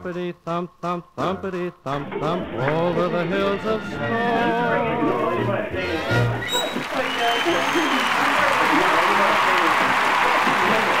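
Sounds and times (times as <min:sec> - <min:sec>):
group clapping: 0:06.6 - 0:11.0.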